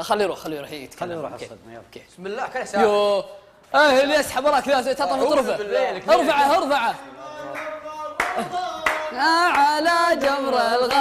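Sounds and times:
hand claps: 7.4 - 11.0.

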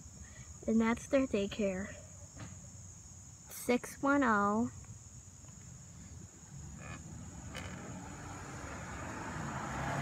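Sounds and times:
tyre noise on road: 5.0 - 10.0
pickup truck approaching: 6.4 - 10.0.

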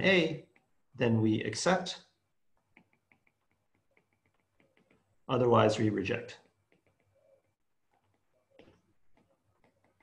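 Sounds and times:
stylus tapping on glass screen: 2.6 - 5.3, 6.3 - 10.0.

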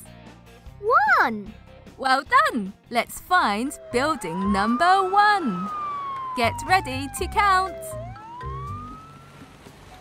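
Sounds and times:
fire engine siren wail: 3.2 - 9.5.

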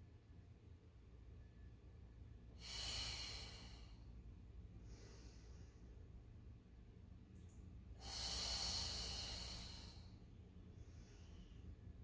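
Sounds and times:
person exhaling: 2.6 - 4.0, 8.0 - 10.2.

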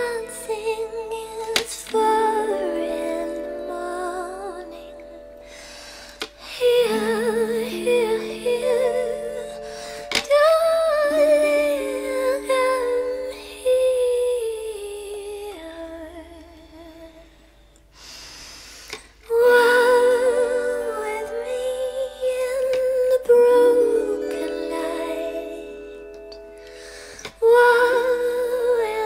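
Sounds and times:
plucked autoharp chords: 0.0 - 16.8, 19.4 - 29.0
breathy hiss: 5.4 - 6.4, 18.0 - 19.2.

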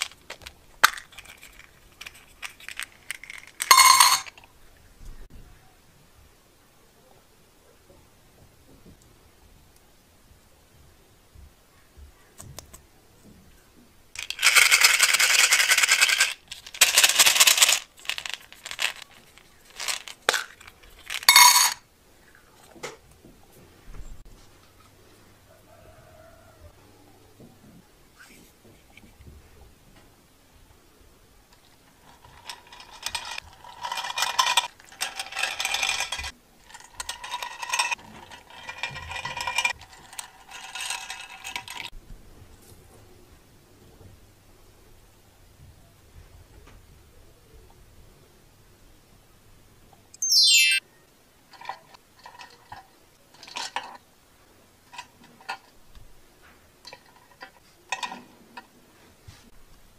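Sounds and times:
plastic beads rattling in metal tin: 0.0 - 4.4, 14.2 - 21.8, 32.0 - 41.9.

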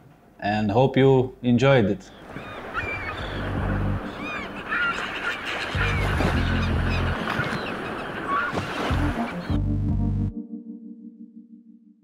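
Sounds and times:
honking bird calls: 1.8 - 9.7
low bass notes: 3.4 - 4.1, 5.8 - 7.2, 8.9 - 11.8.

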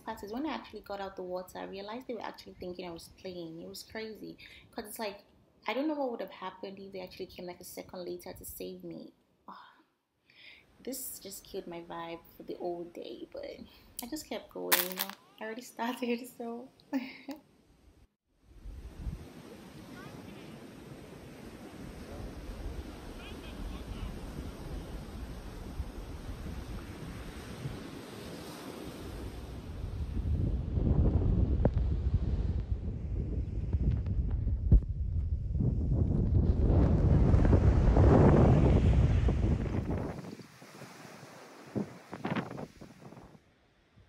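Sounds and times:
wind rumbling on microphone: 18.5 - 43.4
sea surf breaking: 18.6 - 30.3, 36.7 - 43.2.

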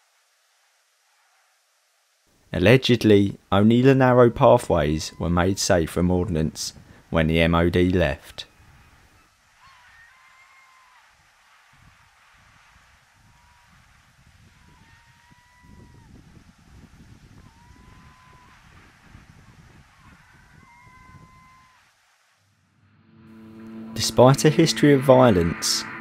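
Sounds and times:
short bird calls: 8.5 - 11.2, 19.9 - 22.0
wind rumble on microphone: 11.7 - 21.6.

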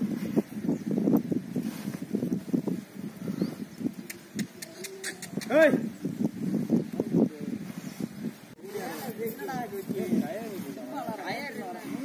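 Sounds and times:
bull horns scraping earth: 0.0 - 3.9, 6.3 - 12.0.

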